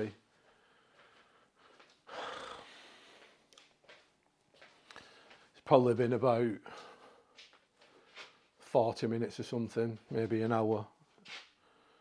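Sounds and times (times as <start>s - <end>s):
man breathing: 0.2s - 3.5s, 4.7s - 5.6s, 6.6s - 8.6s, 11.4s - 12.0s.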